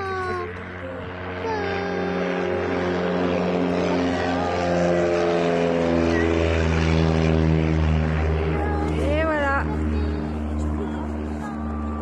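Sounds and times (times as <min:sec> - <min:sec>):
propeller aircraft engine drone: 0:00.0 - 0:12.0.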